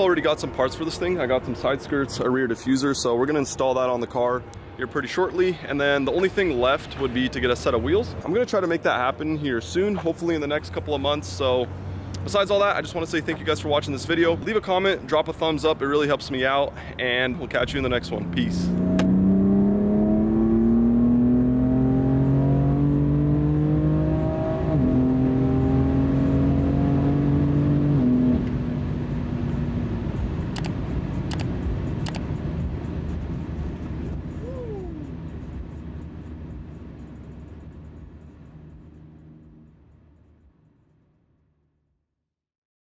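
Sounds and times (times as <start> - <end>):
car engine accelerating: 17.5 - 40.5
gear upshift: 18.7 - 20.6, 30.5 - 32.3.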